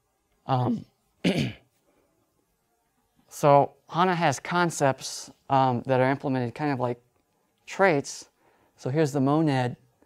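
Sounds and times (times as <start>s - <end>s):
man clearing his throat: 0.7s - 1.7s.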